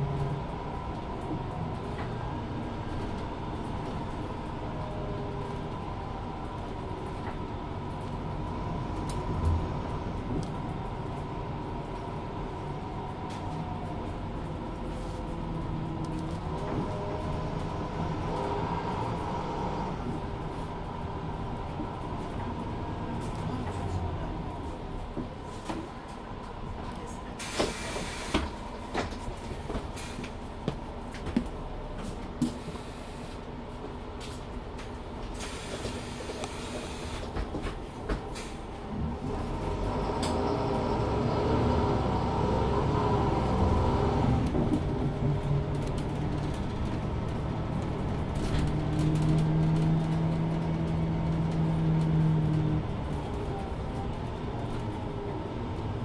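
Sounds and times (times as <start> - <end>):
bus diesel engine drone: 0.0 - 56.0.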